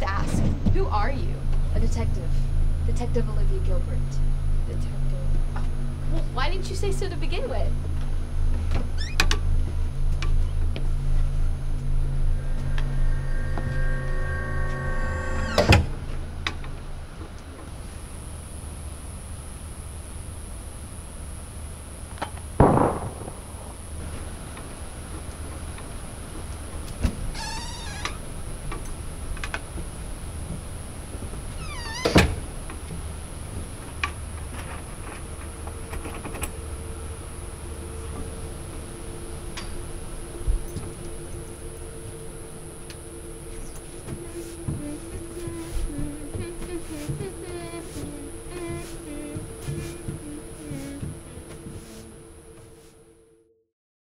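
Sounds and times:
steady low drone: 0.0s - 53.5s
squeaky door hinge: 8.8s - 9.4s, 14.7s - 16.0s, 27.3s - 28.2s, 31.5s - 32.4s
held high tones: 10.4s - 17.0s, 36.6s - 53.0s
loud thump: 22.6s - 23.8s.

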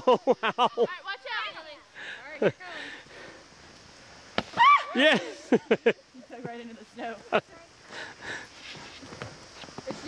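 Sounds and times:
voices calling out: 4.4s - 8.5s.

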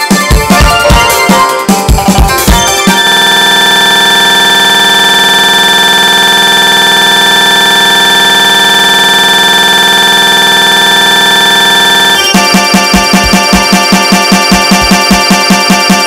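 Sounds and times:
horn-like buzzing tone: 2.6s - 16.0s.

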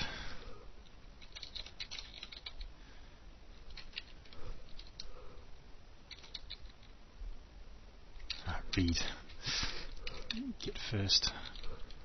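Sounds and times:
keyboard keystrokes: 1.2s - 2.7s, 6.1s - 6.7s.

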